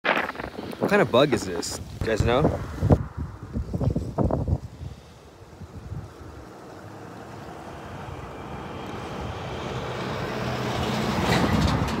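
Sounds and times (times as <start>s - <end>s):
wind bumps on microphone: 0.0s - 6.4s, 11.0s - 12.0s
traffic rushing: 5.0s - 12.0s.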